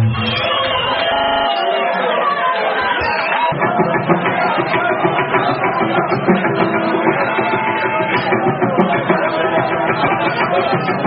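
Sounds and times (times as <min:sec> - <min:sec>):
voices and chatter: 0:00.0 - 0:11.0
live band playing: 0:03.6 - 0:11.0.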